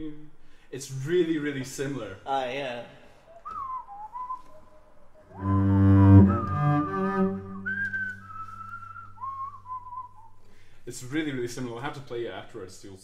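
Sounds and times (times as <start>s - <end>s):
person whistling slow tune: 3.2s - 10.4s.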